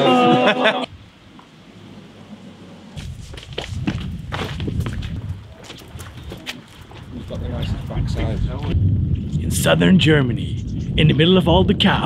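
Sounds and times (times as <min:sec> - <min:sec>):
footsteps walking: 0:03.0 - 0:07.4
low rumble: 0:07.1 - 0:12.0.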